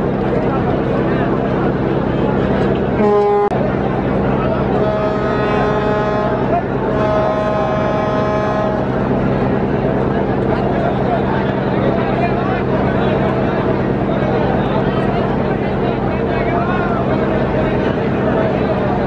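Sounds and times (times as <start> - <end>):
boat engines droning: 0.0 - 19.0
boat horn blasts: 3.0 - 3.8, 4.5 - 9.4.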